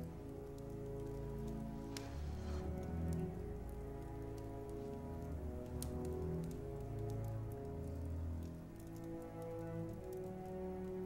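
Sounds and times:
faint crackles: 0:00.0 - 0:11.0
soft slow film score: 0:00.0 - 0:11.0.

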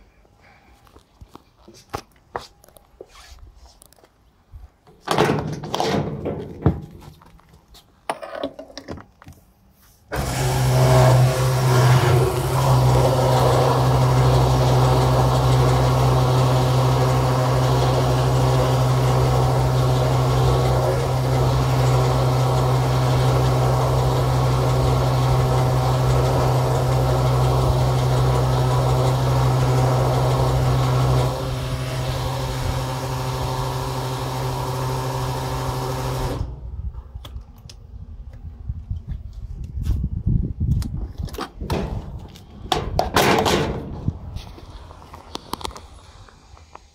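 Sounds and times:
fuel rushing through nozzle: 0:10.1 - 0:36.6
pump motor humming: 0:10.1 - 0:36.6.

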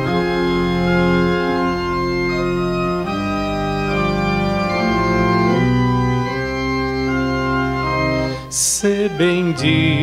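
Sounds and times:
organ playing hymn chords: 0:00.0 - 0:10.0.

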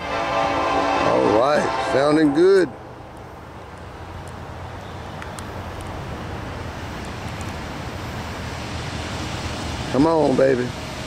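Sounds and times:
diesel locomotive engine rumble: 0:00.0 - 0:11.0.

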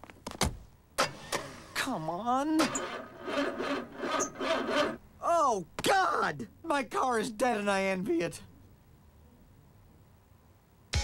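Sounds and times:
car engine cranking: 0:01.0 - 0:05.1.

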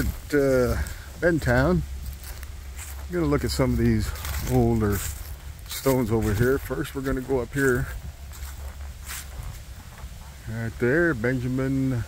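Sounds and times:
footsteps on dry leaves: 0:00.0 - 0:12.0
leaves rustling: 0:00.0 - 0:12.0
low steady rumble: 0:00.0 - 0:12.0.

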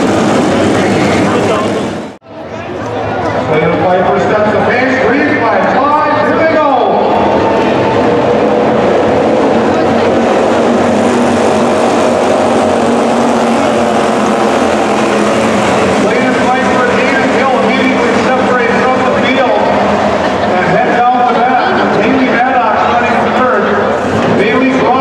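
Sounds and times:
race car engines droning: 0:00.0 - 0:25.0
race cars passing: 0:00.0 - 0:25.0.

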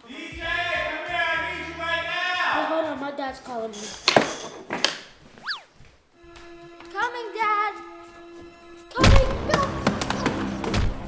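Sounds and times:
music: 0:00.0 - 0:03.2, 0:06.2 - 0:11.0.

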